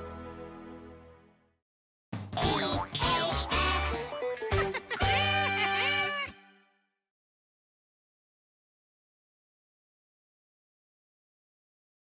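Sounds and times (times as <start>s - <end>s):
closing theme music: 0.0s - 1.5s.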